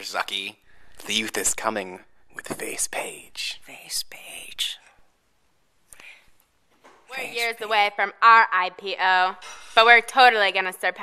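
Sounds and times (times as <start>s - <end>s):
breathy whisper: 2.3s - 5.0s.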